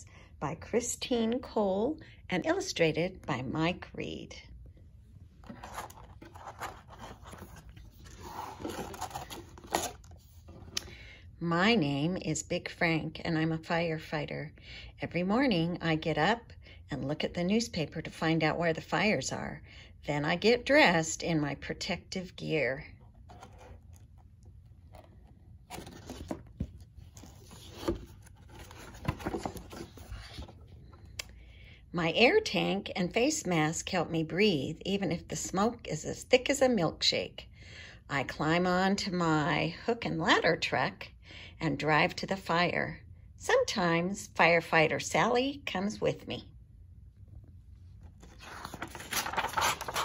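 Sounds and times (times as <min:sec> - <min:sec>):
book pages turning: 0:05.4 - 0:10.8, 0:23.0 - 0:31.2, 0:47.9 - 0:50.0
paper rustling and sliding: 0:05.4 - 0:10.8, 0:23.2 - 0:24.2, 0:24.9 - 0:30.7, 0:48.0 - 0:50.0.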